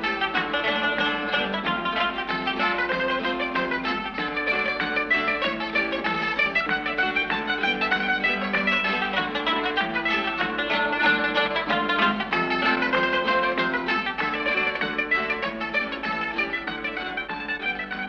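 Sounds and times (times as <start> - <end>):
plucked string instrumental music: 0.0 - 18.0.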